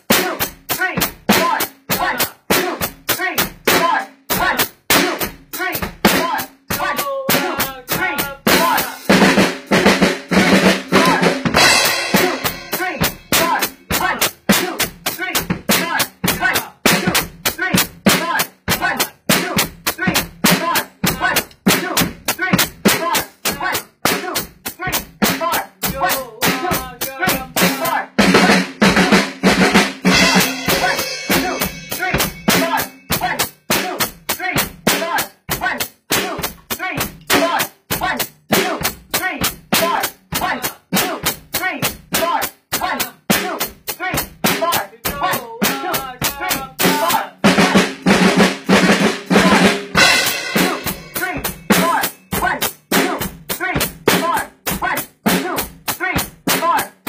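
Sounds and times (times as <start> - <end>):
drum kit played fast: 0.0 - 57.0.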